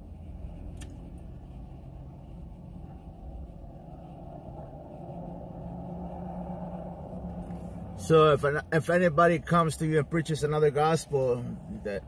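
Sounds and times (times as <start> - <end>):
vehicle rumble inside car cabin: 0.0 - 12.0.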